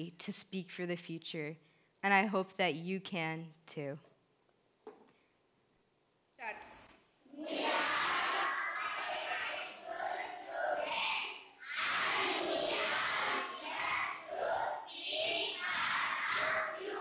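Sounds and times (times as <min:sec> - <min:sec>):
children speaking in unison: 0:07.3 - 0:17.0.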